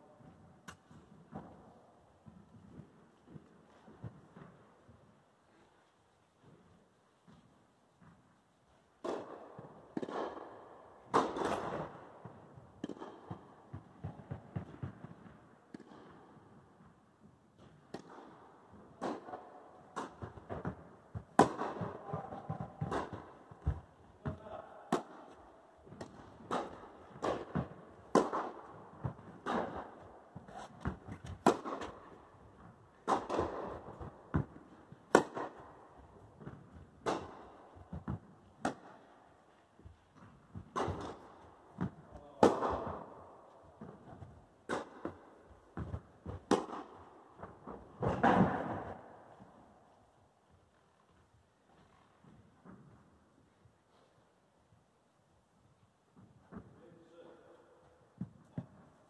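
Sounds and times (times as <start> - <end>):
tennis racket striking ball: 9.0 - 10.5, 11.1 - 16.5, 17.9 - 18.4, 19.0 - 39.1, 40.1 - 43.2, 43.8 - 49.1
tennis ball bouncing: 9.0 - 16.6, 17.6 - 39.2, 39.8 - 49.5.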